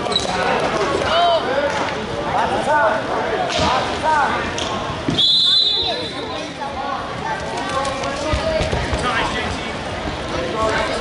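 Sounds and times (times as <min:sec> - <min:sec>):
spectators and coaches calling out: 0:00.0 - 0:11.0.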